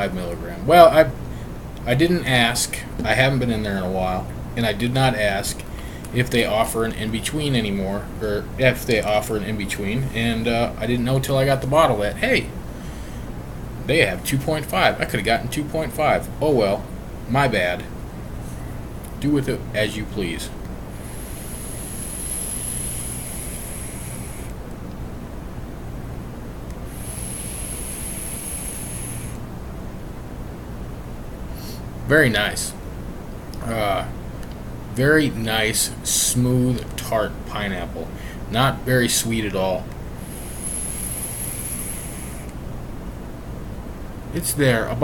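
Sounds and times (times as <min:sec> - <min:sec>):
low background hum: 0:00.0 - 0:45.0
electronic cigarette hissing and sizzling: 0:20.9 - 0:24.6, 0:26.8 - 0:29.4, 0:40.2 - 0:42.6.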